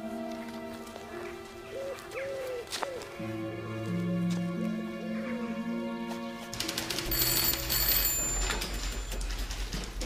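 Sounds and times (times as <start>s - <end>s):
background music: 0.0s - 10.0s
telephone bell ringing: 7.0s - 9.5s.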